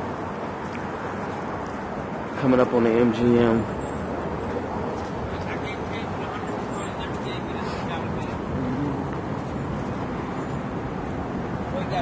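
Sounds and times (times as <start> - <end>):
cars passing: 0.0 - 12.0.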